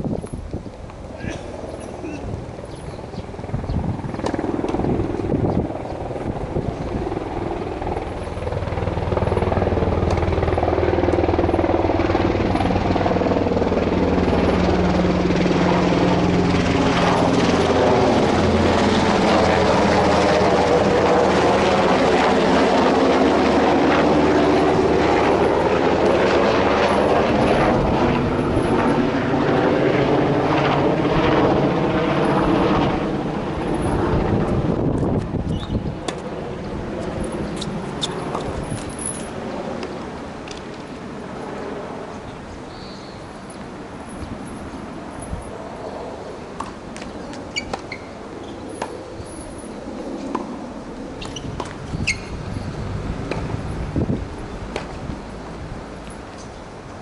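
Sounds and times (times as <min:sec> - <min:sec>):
low-flying aircraft engine drone: 0:00.0 - 0:57.0.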